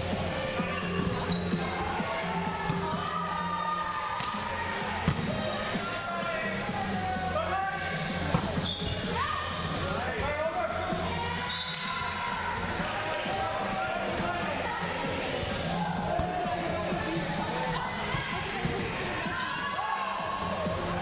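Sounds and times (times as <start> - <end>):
players calling in hall: 0.0 - 21.0.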